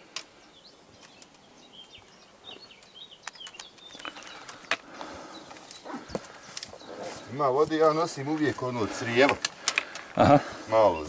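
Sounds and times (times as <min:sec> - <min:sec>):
boots and pole clicking on rock: 0:01.0 - 0:10.6.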